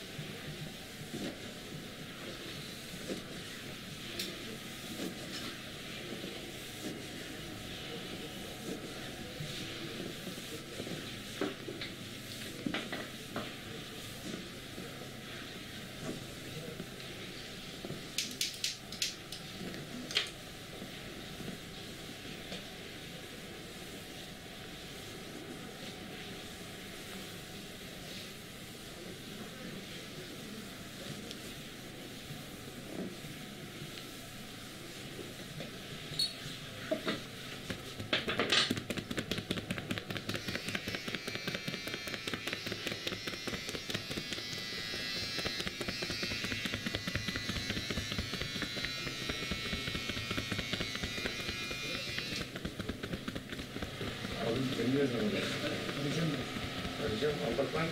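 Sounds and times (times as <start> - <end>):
quiet rubbing on fabric: 0.0 - 18.0, 38.8 - 57.9
hands slapping on a back: 37.7 - 44.6, 45.2 - 54.4.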